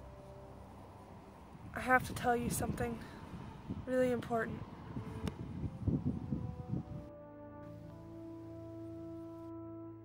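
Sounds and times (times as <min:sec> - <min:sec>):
wind buffeting microphone: 0:01.4 - 0:07.3.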